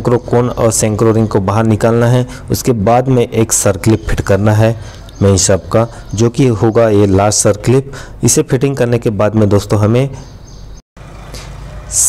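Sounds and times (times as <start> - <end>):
person narrating: 0.0 - 10.2.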